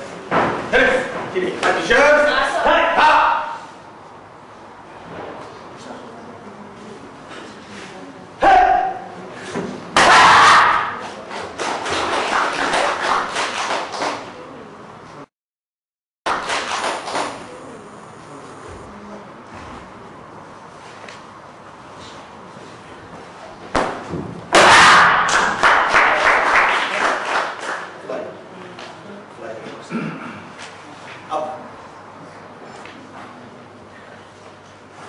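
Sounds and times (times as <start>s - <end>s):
person shouting: 8.4s - 9.1s, 10.0s - 11.0s
applause: 11.6s - 14.3s, 16.3s - 17.5s, 25.2s - 28.0s.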